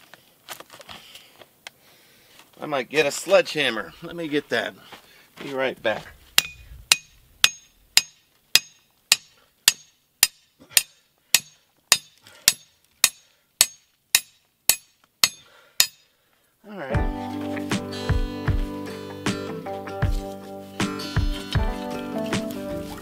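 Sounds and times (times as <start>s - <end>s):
hatchet striking metal rod: 6.4s - 16.1s
acoustic guitar music: 16.9s - 23.0s.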